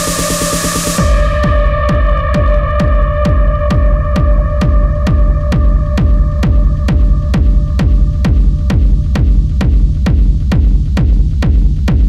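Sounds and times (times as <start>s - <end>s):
techno kick drum: 0.0s - 12.0s.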